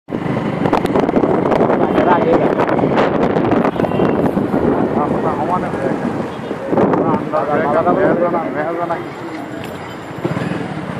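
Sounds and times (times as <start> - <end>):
wind buffeting microphone: 0.1 - 9.1.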